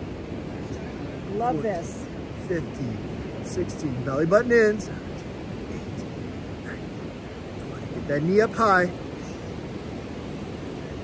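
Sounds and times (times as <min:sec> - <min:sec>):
sea surf: 0:00.0 - 0:11.0
wind: 0:00.0 - 0:11.0.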